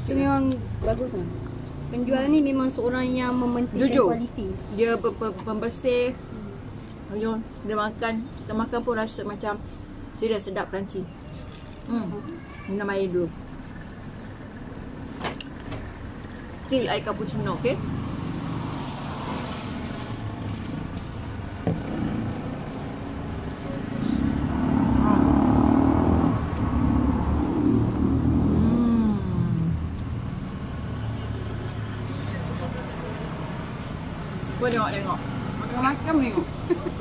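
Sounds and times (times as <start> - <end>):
low traffic noise: 0.0 - 37.0
voices: 31.2 - 37.0.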